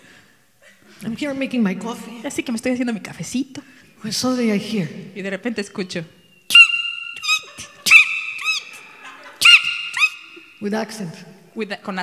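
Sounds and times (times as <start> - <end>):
person imitating hawk cries: 6.5 - 8.8, 9.4 - 10.5.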